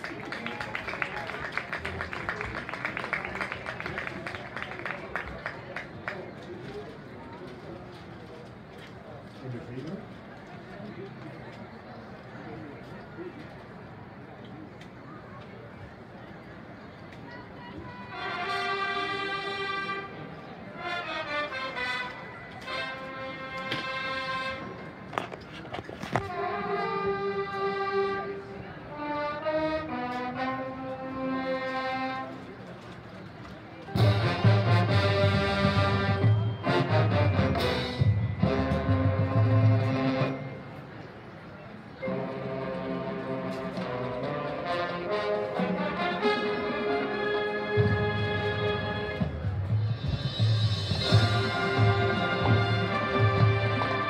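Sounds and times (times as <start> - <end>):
crowd applause: 0.0 - 6.4, 51.1 - 54.0
marching band winds holding chord: 17.5 - 25.0, 33.9 - 41.2, 42.0 - 54.0.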